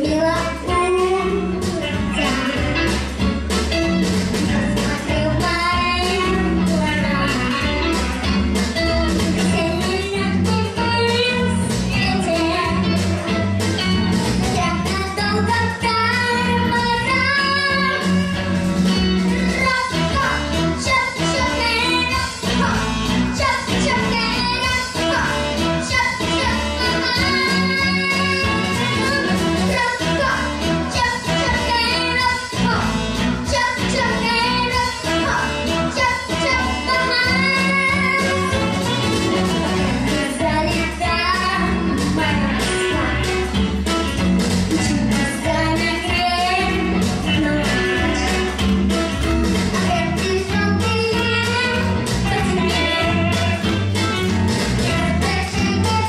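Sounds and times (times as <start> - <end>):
girl singing into a microphone: 0.0 - 2.9, 4.4 - 7.9, 9.3 - 13.4, 14.4 - 18.4, 19.3 - 39.0, 39.7 - 43.6, 44.8 - 48.6, 49.6 - 53.7, 54.8 - 56.0
recorded backing music: 0.0 - 56.0.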